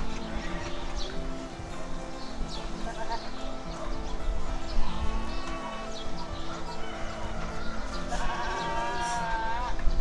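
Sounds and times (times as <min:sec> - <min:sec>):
farm animal bleating: 0:02.5 - 0:03.9, 0:04.5 - 0:09.9.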